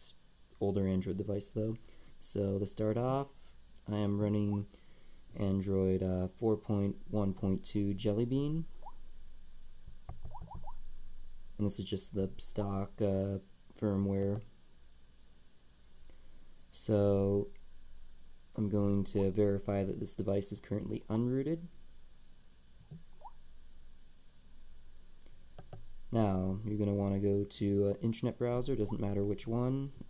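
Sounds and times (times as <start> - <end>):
low hum: 0.0 - 30.0.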